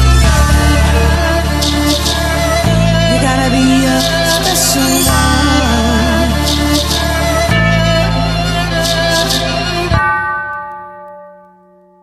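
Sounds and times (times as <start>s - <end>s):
electronic beat: 0.3s - 1.9s.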